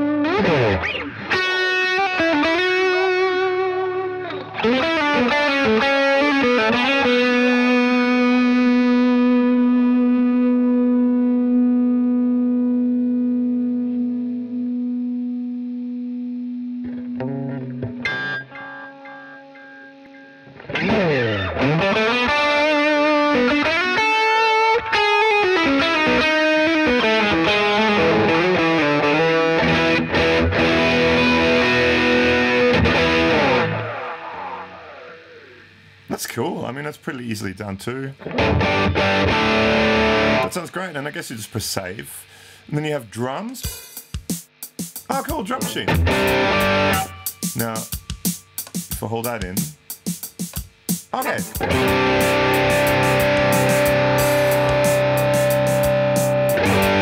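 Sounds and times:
electric guitar with delay: 0.0 - 36.0, 38.2 - 40.6, 45.4 - 48.2, 51.2 - 57.0.

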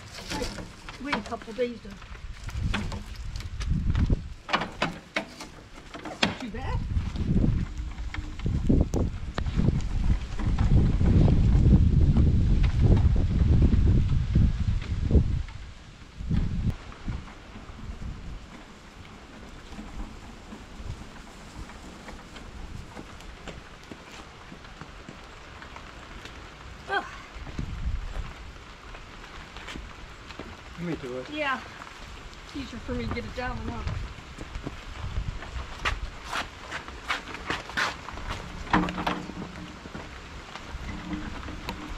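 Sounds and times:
low rumbling microphone noise: 0.0 - 4.9, 6.4 - 24.7, 26.7 - 36.3
light rain: 0.0 - 41.9.

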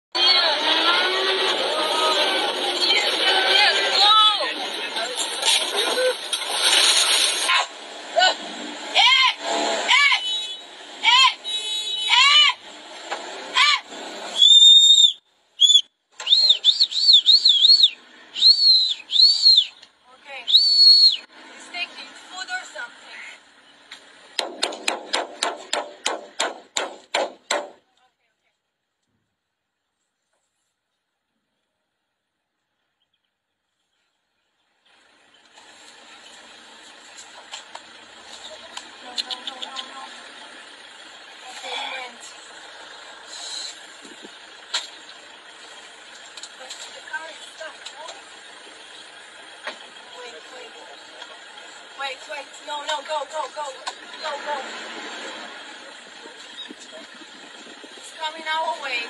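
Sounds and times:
people shouting: 7.5 - 10.3, 11.0 - 11.4, 12.1 - 12.6, 13.6 - 13.9
sharp evenly spaced clicks: 23.9 - 27.8.

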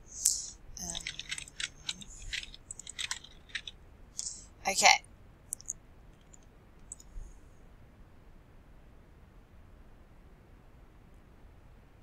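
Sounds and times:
computer mouse clicks: 0.2 - 4.6, 5.5 - 7.1.

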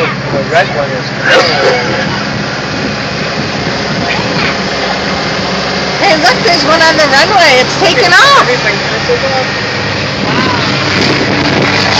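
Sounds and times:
constant rushing noise: 0.0 - 11.9
vehicle engine humming: 0.0 - 11.9.

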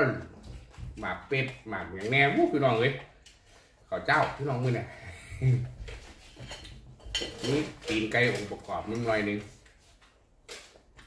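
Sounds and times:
person speaking: 0.0 - 3.2, 3.9 - 6.1, 7.2 - 9.7
spoons clinking on ceramic plates: 6.2 - 8.6.

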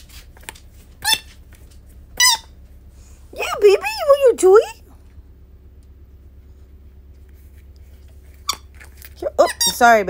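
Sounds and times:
rubber dog toy squeaking: 1.0 - 1.4, 2.2 - 2.6, 8.4 - 10.0.

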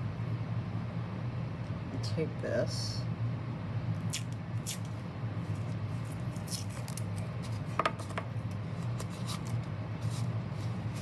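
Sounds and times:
steady low hum: 0.0 - 11.0
masking tape tearing: 6.4 - 7.3.

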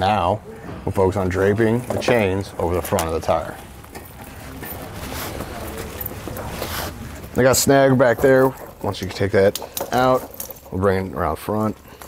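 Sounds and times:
snow chains clinking: 2.1 - 12.0.

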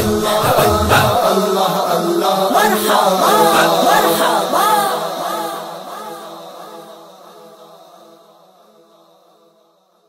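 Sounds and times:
voices singing devotional song: 0.0 - 9.4.

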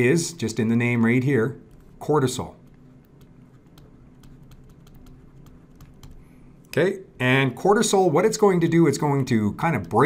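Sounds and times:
low steady hum: 0.0 - 10.0
stylus tapping on pen tablet: 2.7 - 6.2.

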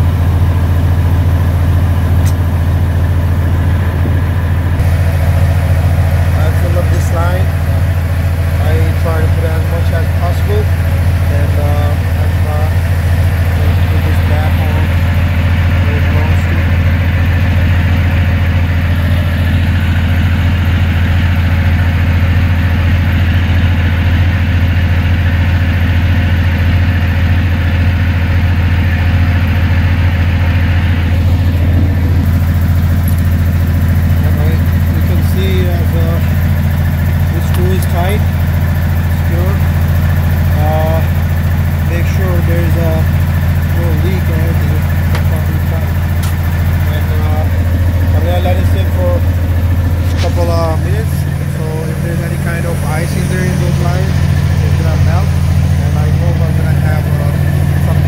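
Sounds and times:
diesel truck engine idling: 0.0 - 58.0.

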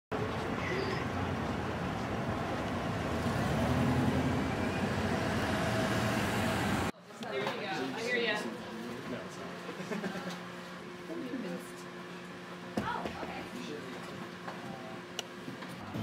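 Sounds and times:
traffic rumble: 0.1 - 6.9.

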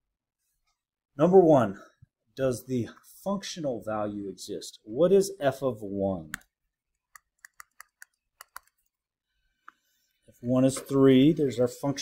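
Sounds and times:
stylus tapping on touchscreen: 7.1 - 8.8.

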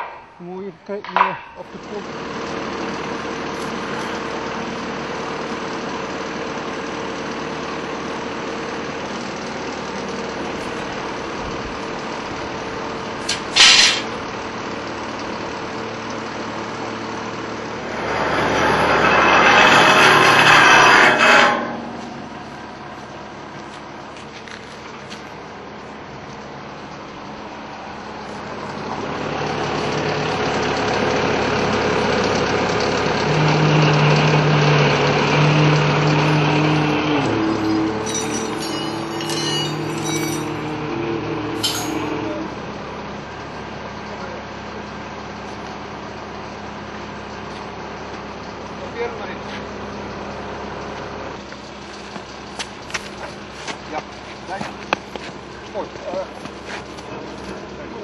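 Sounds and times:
crane engine running: 1.6 - 58.0
rushing hiss: 13.3 - 14.1
sharp hiss: 13.3 - 14.1.

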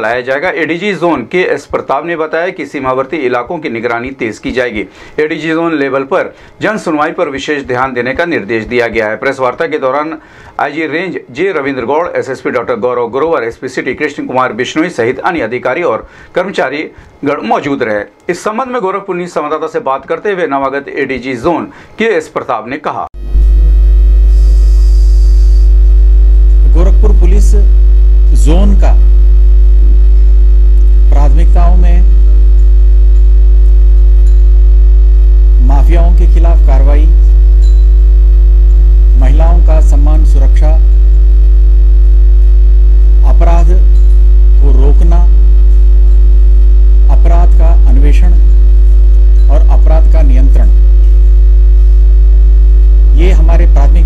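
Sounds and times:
electrical mains hum: 0.0 - 54.0.

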